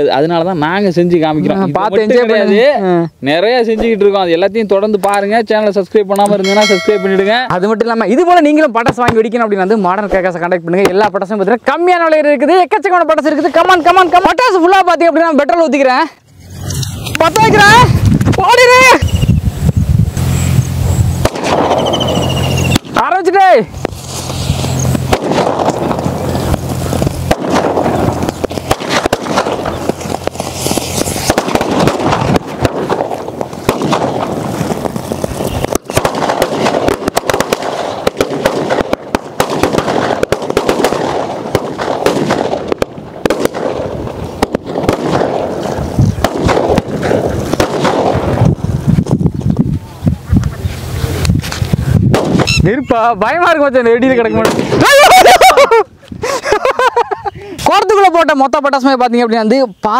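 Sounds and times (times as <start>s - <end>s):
firecracker fuse hissing: 0.3s - 58.2s
low rumbling noise: 16.2s - 54.8s
faint high whistle: 21.8s - 22.8s.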